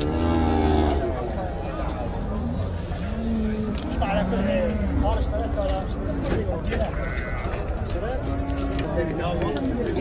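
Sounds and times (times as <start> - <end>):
faint men's voices: 0.0 - 10.0.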